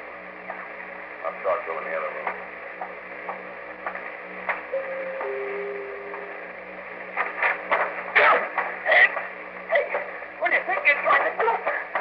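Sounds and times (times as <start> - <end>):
recording hum and hiss: 0.0 - 12.0
radio drama voices: 1.2 - 2.5, 4.8 - 12.0
held tone: 4.7 - 6.6.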